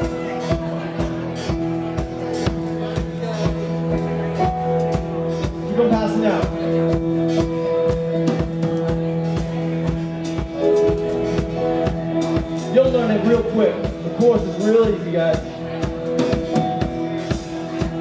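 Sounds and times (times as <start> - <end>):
live rock band playing: 0.0 - 18.0
steady drum beat: 0.0 - 18.0.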